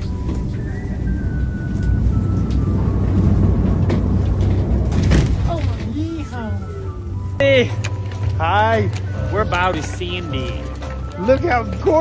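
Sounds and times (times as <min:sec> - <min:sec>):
gondola cabin low rumble: 0:00.0 - 0:12.0.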